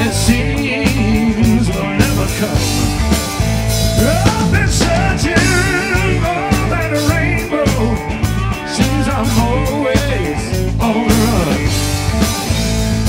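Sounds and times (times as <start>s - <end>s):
blues-rock band playing: 0.0s - 13.0s.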